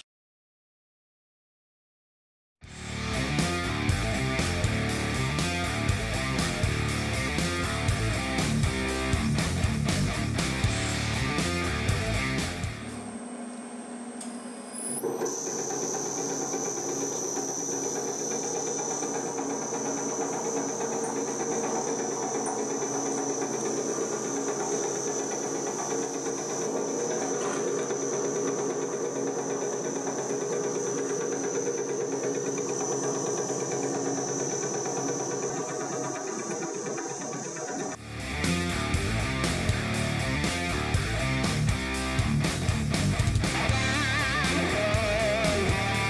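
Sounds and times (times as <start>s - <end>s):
lathe motor whining: 12.7s - 38.0s.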